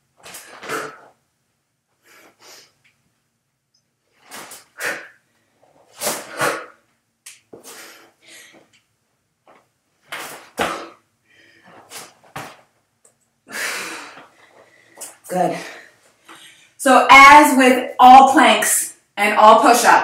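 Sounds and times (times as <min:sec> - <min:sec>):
woman breathing hard: 0:13.5 - 0:16.8.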